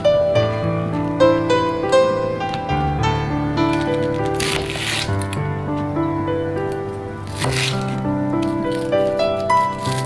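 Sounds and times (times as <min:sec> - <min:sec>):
background music with sustained notes: 0:00.0 - 0:10.0
knife slicing on a cutting board: 0:03.8 - 0:05.4, 0:07.3 - 0:10.0.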